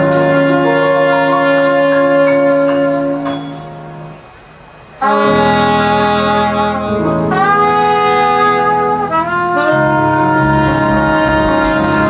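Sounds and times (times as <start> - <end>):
jazz horn section playing chords: 0.0 - 4.3, 5.0 - 12.0.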